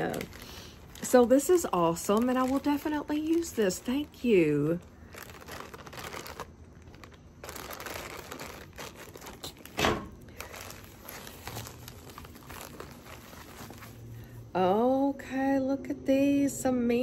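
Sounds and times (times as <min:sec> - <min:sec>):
packaging rustling and crinkling: 0:00.0 - 0:14.3.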